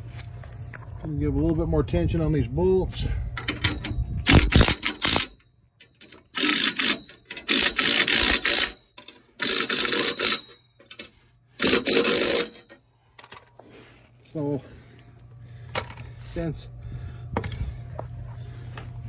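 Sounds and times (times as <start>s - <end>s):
impact gun hammering bolts: 3.4s - 13.4s.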